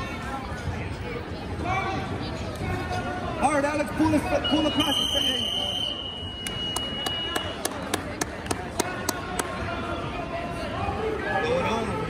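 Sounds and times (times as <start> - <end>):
gym crowd hubbub: 0.0 - 12.0.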